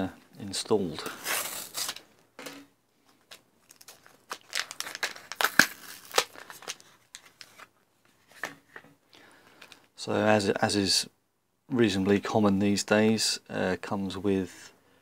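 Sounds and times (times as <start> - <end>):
plastic blister pack crinkling: 1.0 - 2.2, 3.1 - 7.7.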